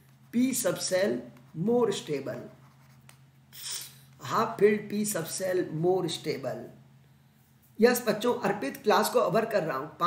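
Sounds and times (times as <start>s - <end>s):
short hiss: 3.5s - 4.1s.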